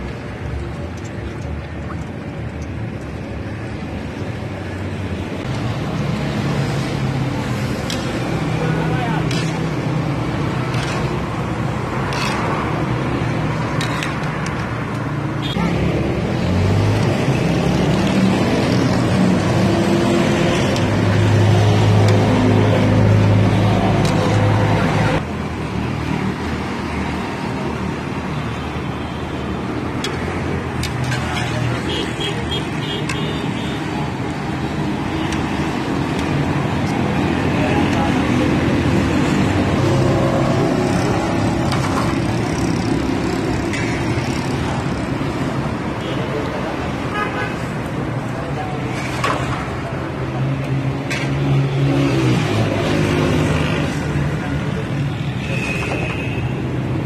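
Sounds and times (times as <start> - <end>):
street traffic: 0.0 - 57.0.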